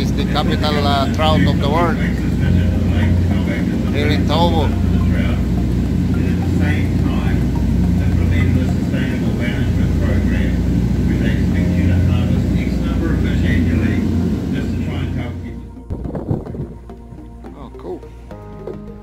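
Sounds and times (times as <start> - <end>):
boat engine humming: 0.0 - 19.0
indistinct voices talking: 0.0 - 19.0.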